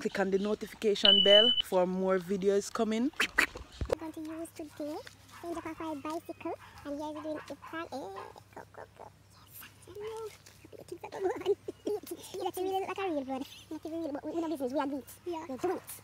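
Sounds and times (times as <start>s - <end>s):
quiet high-pitched voice talking: 4.0s - 16.0s.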